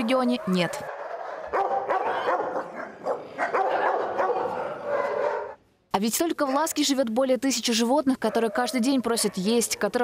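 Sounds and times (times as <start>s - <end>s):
dogs barking: 0.0s - 5.6s, 8.2s - 10.0s.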